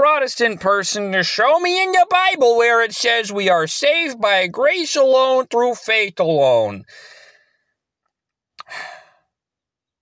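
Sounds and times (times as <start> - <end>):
man breathing: 6.8 - 7.8, 8.6 - 9.4
mouth click: 8.6 - 8.8
short sigh: 8.6 - 9.2.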